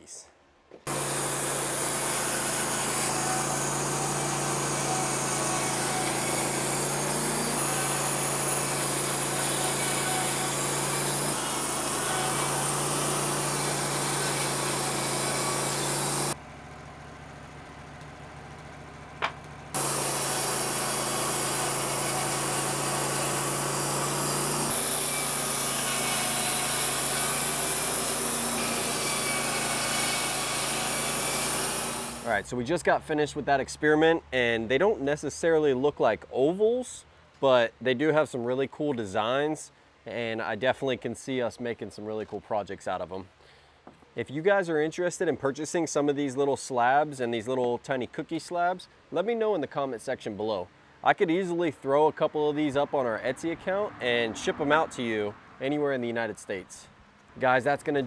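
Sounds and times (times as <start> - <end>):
band saw blade cutting wood: 0.8 - 16.4, 19.7 - 32.4
sawmill engine hum: 0.8 - 32.5.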